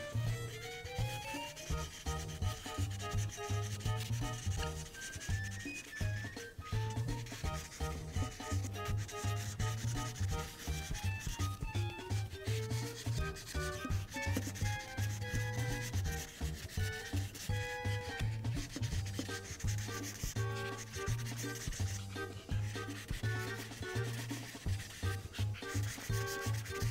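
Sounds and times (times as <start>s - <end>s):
light background music: 0.0s - 26.9s
marker rubbing on paper: 0.1s - 26.9s.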